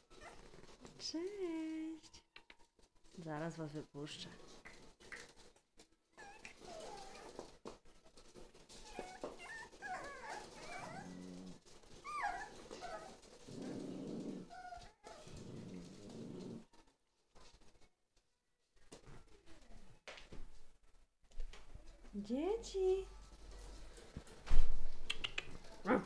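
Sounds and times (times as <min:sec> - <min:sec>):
puppies whining and yipping: 0:00.0 - 0:00.6, 0:06.2 - 0:07.5, 0:08.7 - 0:15.7
puppies growling: 0:08.5 - 0:16.7.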